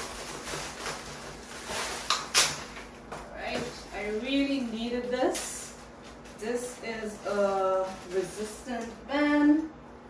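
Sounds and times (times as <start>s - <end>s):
plastic bag rustling and crinkling: 0.0s - 8.8s.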